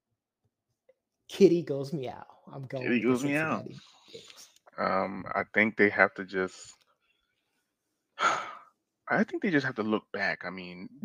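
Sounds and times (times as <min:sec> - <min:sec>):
person sighing: 0:08.2 - 0:08.6.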